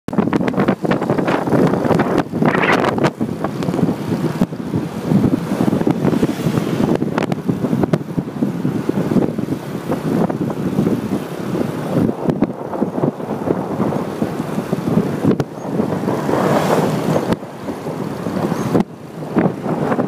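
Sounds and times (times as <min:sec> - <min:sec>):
road and engine noise: 0:00.1 - 0:20.0
wind buffeting microphone: 0:00.1 - 0:20.0.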